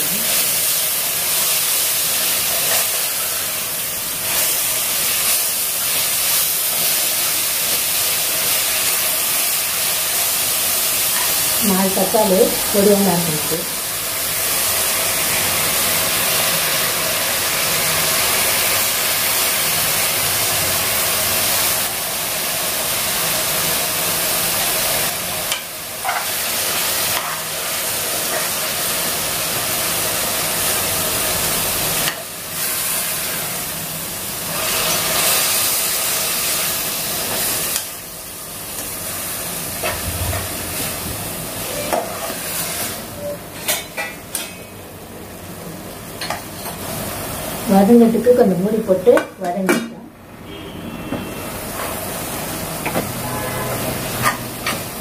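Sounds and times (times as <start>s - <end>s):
vegetables sizzling in hot oil: 0.0s - 49.5s, 51.3s - 55.0s.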